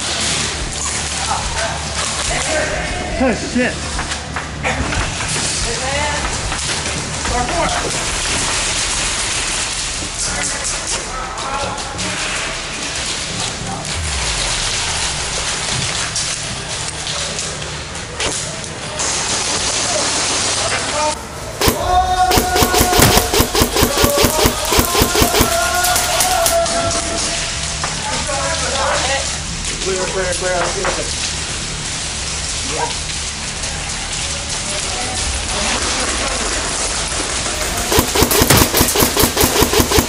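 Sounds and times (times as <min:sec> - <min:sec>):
steady background noise: 0:00.0 - 0:40.0
airsoft guns firing: 0:21.6 - 0:26.6, 0:37.6 - 0:40.0.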